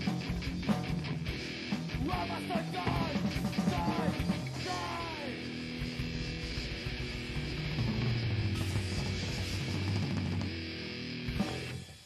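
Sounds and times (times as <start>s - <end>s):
punk song with distorted guitar: 0.0s - 12.0s.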